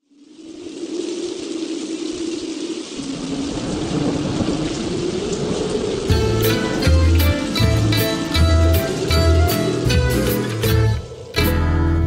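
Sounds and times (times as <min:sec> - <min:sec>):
steady rain: 0:00.0 - 0:11.8
music with drum beat and bass: 0:06.1 - 0:12.0.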